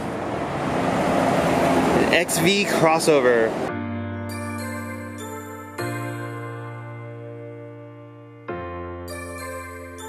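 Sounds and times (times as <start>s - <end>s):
outdoor rushing noise: 0.0s - 3.7s.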